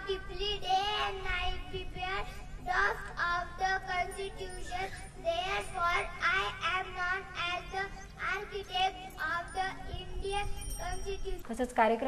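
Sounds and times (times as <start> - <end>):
boy reciting in sing-song voice: 0.0 - 11.4.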